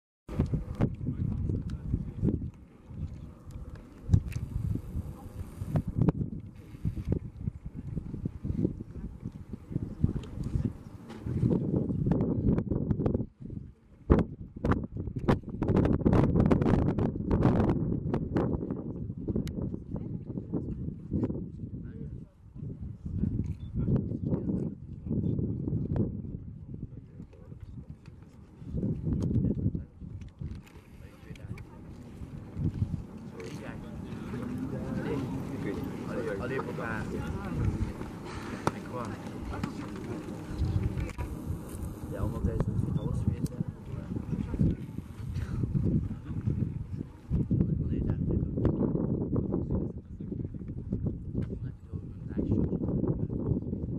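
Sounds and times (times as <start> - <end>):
low rumble of lava fountains: 0.3 - 21.6, 24.8 - 53.9.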